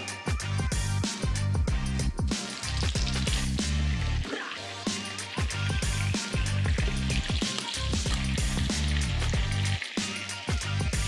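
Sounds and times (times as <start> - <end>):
music with sliding bass: 0.0 - 11.0
chicken sizzling in oil: 2.3 - 11.0.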